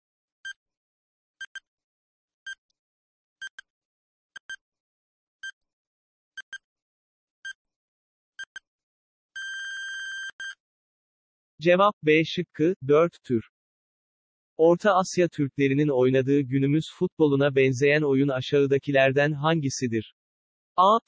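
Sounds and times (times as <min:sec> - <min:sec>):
long beep: 0:09.4 - 0:10.6.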